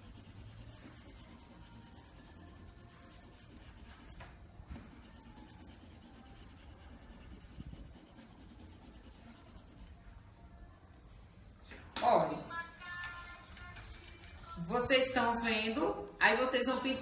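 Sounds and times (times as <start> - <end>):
pencil scratching on paper: 0.0 - 4.2, 4.8 - 10.0.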